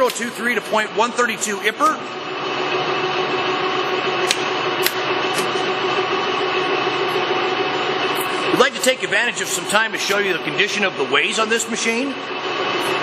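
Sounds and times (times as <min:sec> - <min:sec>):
lathe machine whine: 0:00.0 - 0:13.0.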